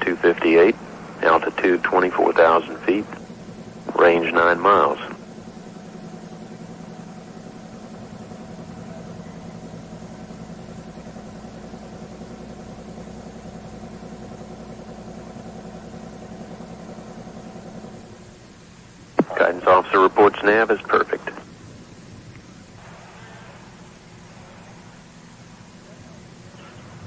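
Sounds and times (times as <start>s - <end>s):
steady tonal hum: 0.0s - 27.0s.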